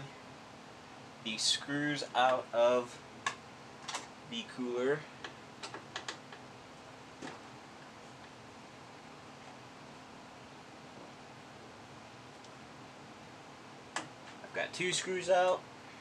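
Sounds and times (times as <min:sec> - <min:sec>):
faint computer hum: 0:00.0 - 0:16.0.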